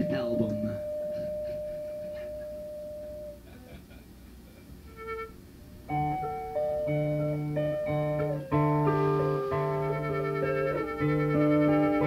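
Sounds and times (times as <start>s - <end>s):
steady synthesizer note: 0.0s - 3.4s.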